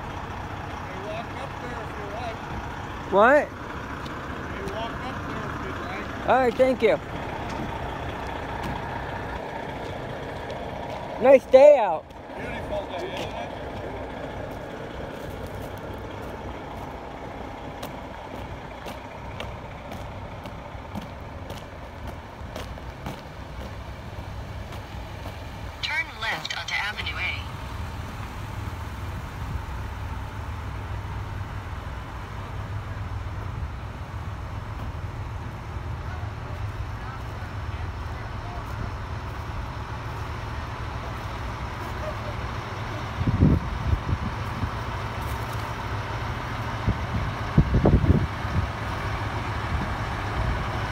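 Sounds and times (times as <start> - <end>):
diesel engines droning: 0.0 - 50.9.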